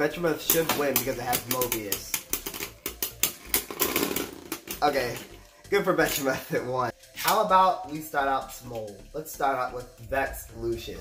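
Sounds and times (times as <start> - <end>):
spinning tops clashing: 0.4 - 5.3.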